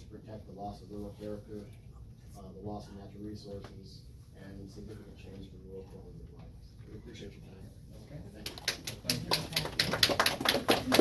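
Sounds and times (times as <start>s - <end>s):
people clapping: 8.4s - 11.0s.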